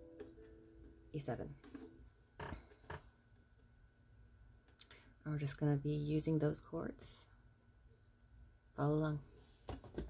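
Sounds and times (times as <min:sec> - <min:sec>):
ukulele handling creaks: 0:01.6 - 0:03.2.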